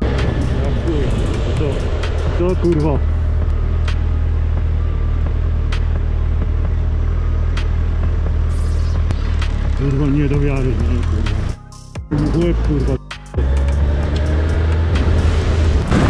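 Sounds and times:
motorcycle engine running: 0.0s - 12.8s.

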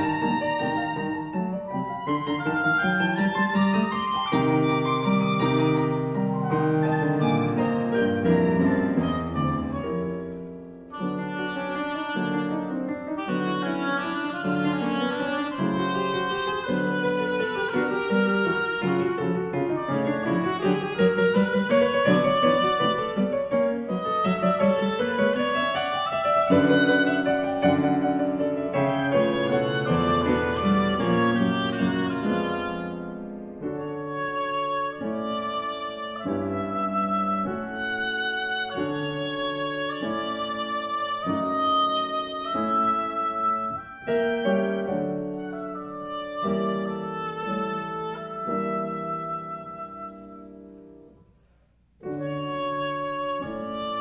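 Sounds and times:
oboe: 0.0s - 51.0s, 52.0s - 54.0s
grand piano: 0.0s - 54.0s.

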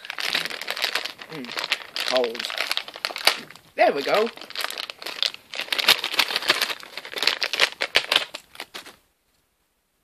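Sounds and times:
packaging crinkling: 0.0s - 9.0s.

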